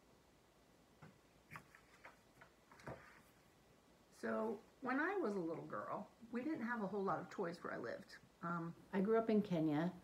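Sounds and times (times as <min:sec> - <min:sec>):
book clicks and taps: 0:01.0 - 0:03.2.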